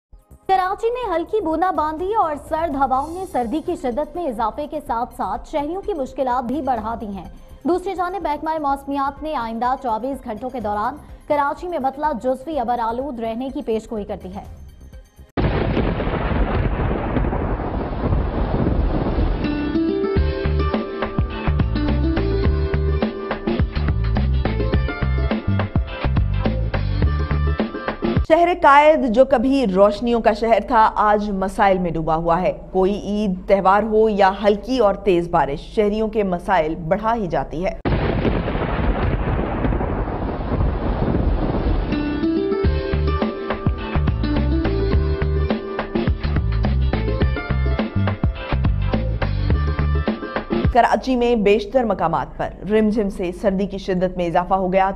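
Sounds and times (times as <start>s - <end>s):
rolling thunder: 15.4s - 20.0s, 37.9s - 42.6s
rain hiss: 15.5s - 19.7s, 37.9s - 42.3s.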